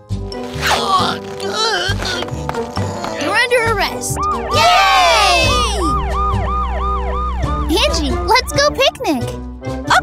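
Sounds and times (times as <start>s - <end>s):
background music: 0.0s - 10.0s
cartoon ambulance siren: 4.1s - 8.6s
group cheering: 4.4s - 6.0s.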